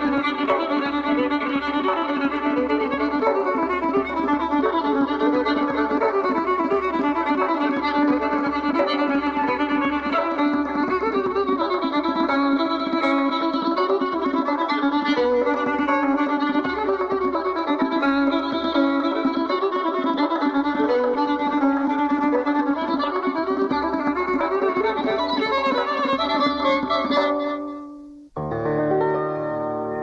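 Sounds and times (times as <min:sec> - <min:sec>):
plucked string instrument: 0:00.0 - 0:30.0
violin melody: 0:00.0 - 0:30.0.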